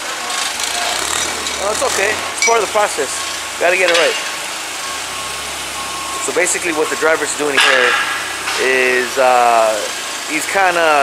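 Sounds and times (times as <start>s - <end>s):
forklift engine idling: 0.0s - 11.0s.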